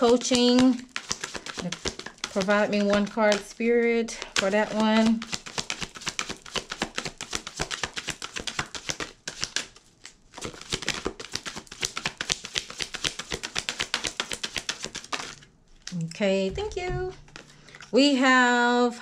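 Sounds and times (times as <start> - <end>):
cards being shuffled: 0.0 - 16.0.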